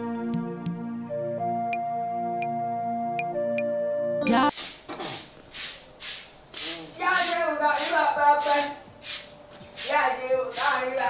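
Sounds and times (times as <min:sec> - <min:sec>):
broom sweeping concrete: 0:04.5 - 0:11.0
person speaking: 0:06.6 - 0:08.8, 0:09.8 - 0:11.0.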